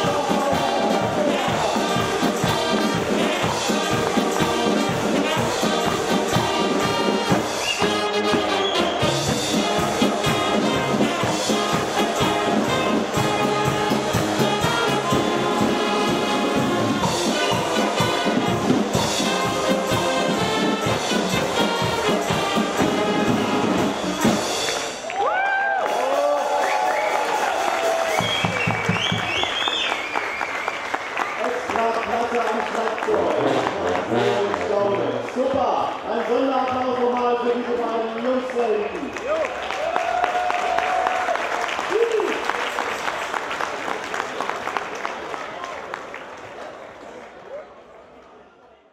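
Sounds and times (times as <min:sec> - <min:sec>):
voices and shouting: 0:00.0 - 0:04.6
drum kit beat: 0:00.0 - 0:25.1, 0:25.9 - 0:29.4
brass band playing: 0:00.0 - 0:29.8, 0:32.3 - 0:36.1.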